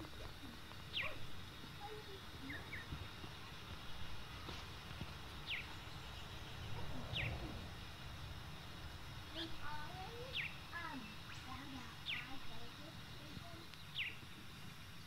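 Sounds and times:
low outdoor rumble: 0.0 - 15.0
small bird chirping: 0.0 - 15.0.

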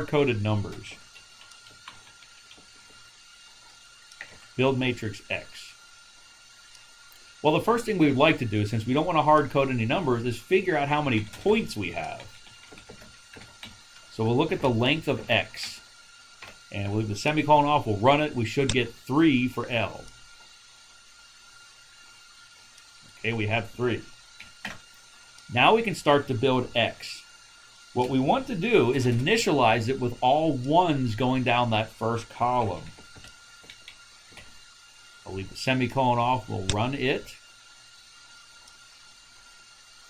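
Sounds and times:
microphone hiss: 0.0 - 40.0
thin steady tone: 0.0 - 40.0.

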